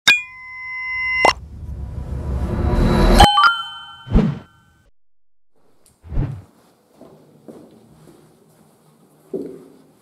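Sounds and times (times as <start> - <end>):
whooshing swell: 1.3 - 3.2
ringing chime: 3.2 - 4.8.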